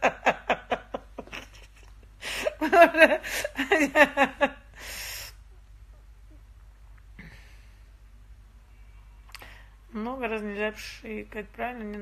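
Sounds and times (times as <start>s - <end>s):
woman laughing: 0.0s - 4.6s.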